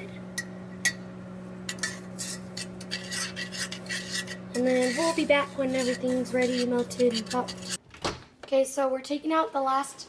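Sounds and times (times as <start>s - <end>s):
metal spoon stirring in saucepan: 1.7s - 7.8s
spoon scraping and clinking pan: 1.7s - 7.8s.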